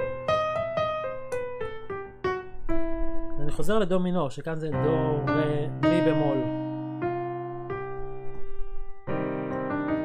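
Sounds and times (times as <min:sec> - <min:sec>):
software piano notes: 0:00.0 - 0:10.0.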